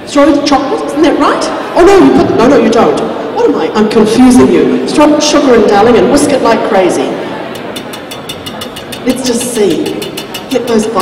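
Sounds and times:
whisk clicking against steel bowl: 7.5 - 11.0.

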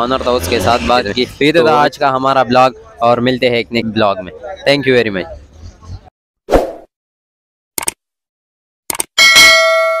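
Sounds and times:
quick clicks: 7.8 - 8.0, 8.9 - 9.1
notification bell ding: 9.2 - 10.0.

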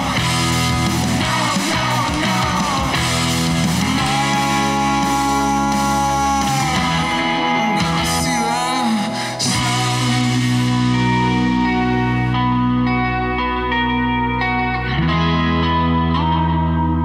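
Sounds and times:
guitar-driven rock song: 0.0 - 17.0.

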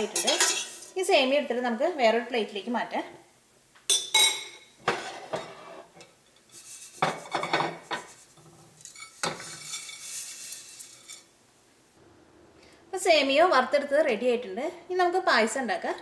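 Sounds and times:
metal pan and utensil clinking: 0.0 - 1.0, 3.9 - 11.3
dry noodles rustling onto plate: 6.5 - 11.3.

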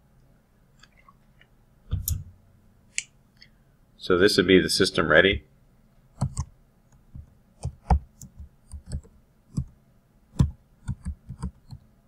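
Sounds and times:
keyboard typing: 6.2 - 6.5, 7.2 - 9.7, 10.4 - 11.8.

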